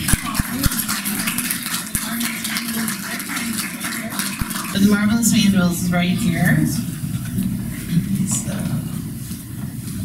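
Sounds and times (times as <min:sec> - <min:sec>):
light scattered applause: 0:00.0 - 0:06.8.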